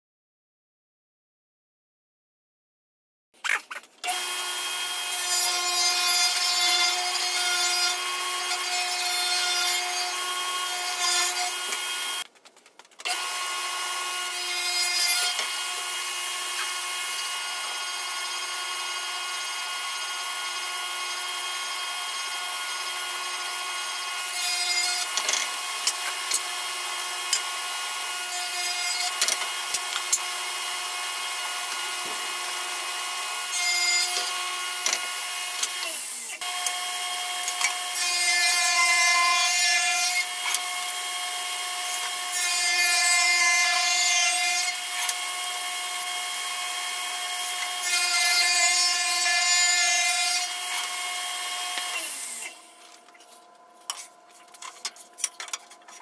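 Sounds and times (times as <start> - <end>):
table saw cutting wood: 3.7 - 12.2, 13.0 - 53.0
table saw motor whine: 13.1 - 53.0.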